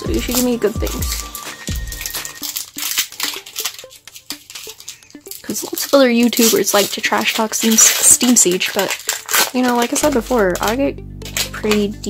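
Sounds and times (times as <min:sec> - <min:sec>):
music with plucked beat: 0:00.0 - 0:06.5, 0:10.0 - 0:12.0
foil wrapper crinkling: 0:00.0 - 0:12.0.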